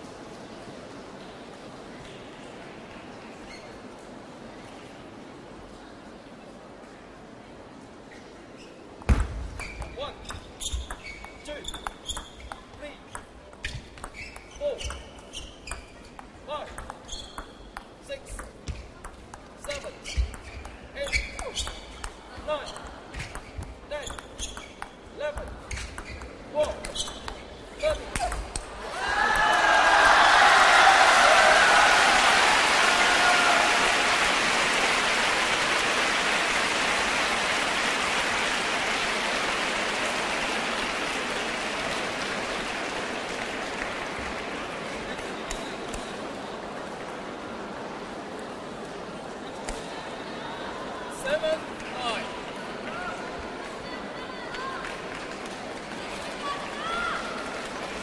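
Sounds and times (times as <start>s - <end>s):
shoes squeaking on floor: 3.5s - 3.8s, 9.6s - 12.7s, 13.6s - 16.2s, 17.0s - 17.8s, 20.0s - 22.0s, 22.6s - 25.0s, 25.6s - 28.4s
table tennis ball clicking: 9.7s - 27.4s
crowd shouts: 28.8s - 34.2s
crowd applauding: 28.9s - 45.3s.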